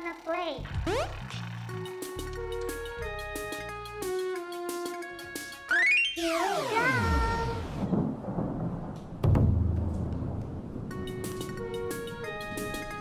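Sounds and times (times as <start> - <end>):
electronic game music: 0.6 - 7.7
deep booming hit: 7.8 - 11.0.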